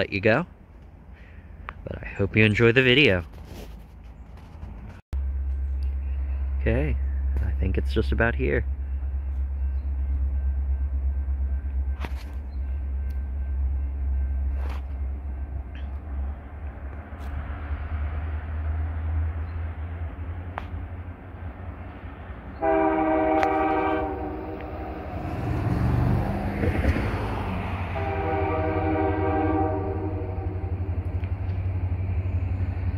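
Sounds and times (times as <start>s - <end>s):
freight train rumble: 0.0s - 32.9s
train horn blast: 22.5s - 26.1s, 27.8s - 31.3s.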